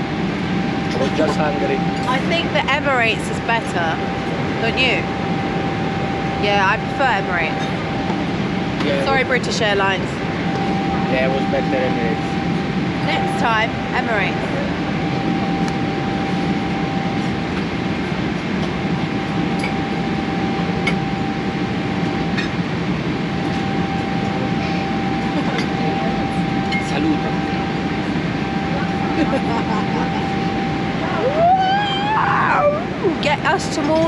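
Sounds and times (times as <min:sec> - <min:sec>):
airliner cabin roar: 0:00.0 - 0:34.0
faint steady whine: 0:00.0 - 0:34.0.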